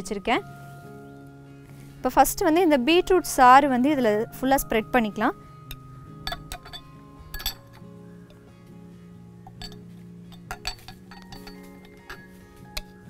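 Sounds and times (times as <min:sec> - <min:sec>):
soft background music: 0:00.0 - 0:13.0
spoon clinking against glass: 0:05.7 - 0:08.4, 0:09.5 - 0:13.0.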